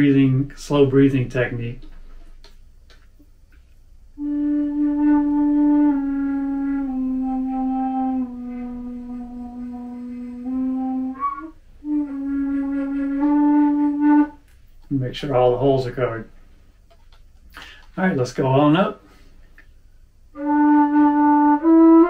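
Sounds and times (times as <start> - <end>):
flute playing low notes: 4.2 - 14.4, 20.4 - 22.0.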